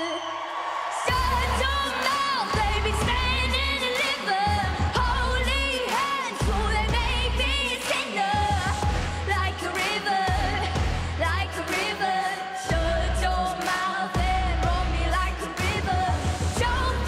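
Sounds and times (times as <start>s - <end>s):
girl singing a pop ballad: 0.9s - 17.0s
backing track with pulsing bass: 1.1s - 11.7s, 14.2s - 17.0s.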